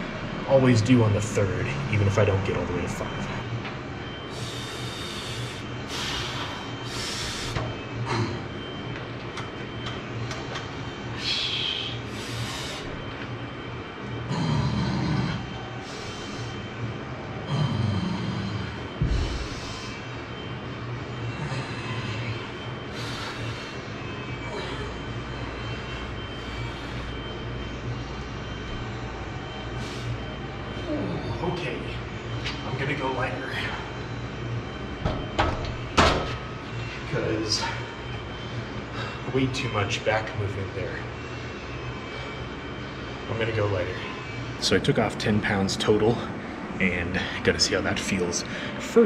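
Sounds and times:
man breathing strained: 0:04.3 - 0:08.6, 0:11.2 - 0:13.0, 0:21.2 - 0:27.3.

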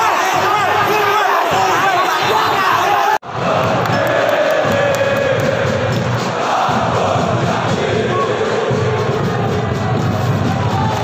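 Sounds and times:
crowd singing a chant: 0:00.0 - 0:10.8.

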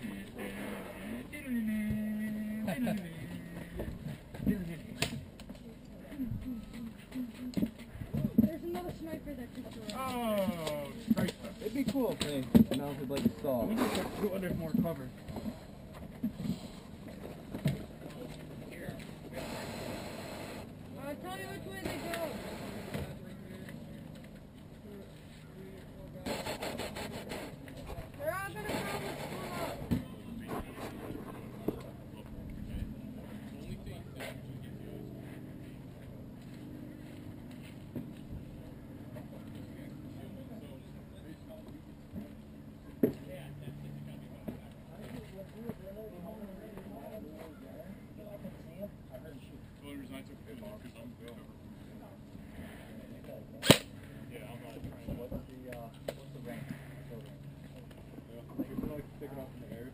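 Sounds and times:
low steady background noise: 0:00.0 - 0:59.9
distant people talking: 0:16.4 - 0:59.9.

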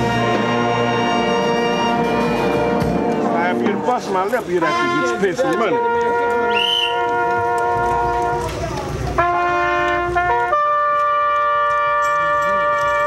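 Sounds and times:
brass band sustained notes: 0:00.0 - 0:13.0.

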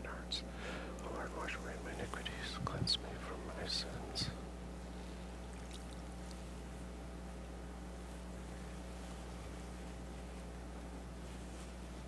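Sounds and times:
man whispering a prayer: 0:00.0 - 0:04.5
steady low hum: 0:00.0 - 0:12.0.

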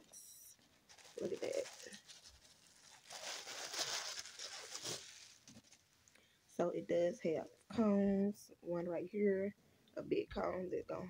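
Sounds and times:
rustling and crinkling packaging: 0:00.0 - 0:06.2.

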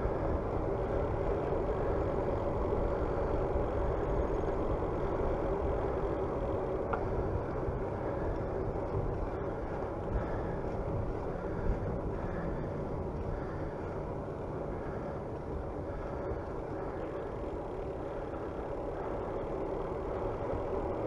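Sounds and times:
bicycle tyres rolling on asphalt: 0:00.0 - 0:21.0.

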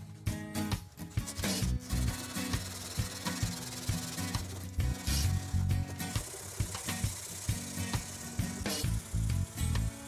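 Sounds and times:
knife scraping on sandpaper: 0:01.0 - 0:07.4.

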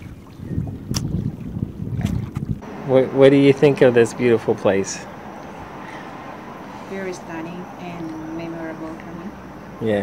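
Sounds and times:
wind buffeting microphone: 0:00.0 - 0:09.8.

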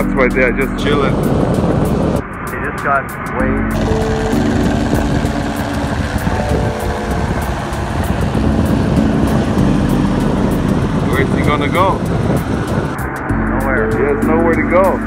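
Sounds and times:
helicopter rotor beat: 0:00.0 - 0:15.0
wind: 0:00.0 - 0:15.0
helicopter engine drone: 0:00.8 - 0:13.4.

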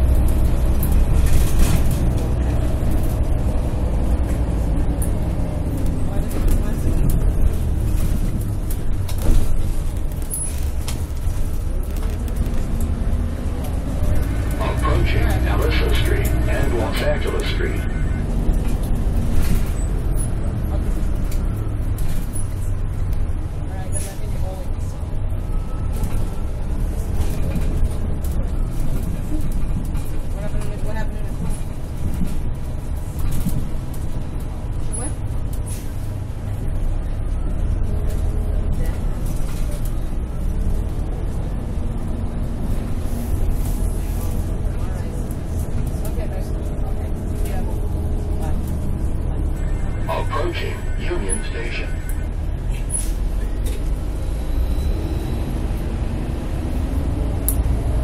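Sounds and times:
bus engine rumble: 0:00.0 - 0:58.0
road noise: 0:00.0 - 0:58.0
faint passenger voices: 0:01.2 - 0:10.1, 0:10.8 - 0:54.0.

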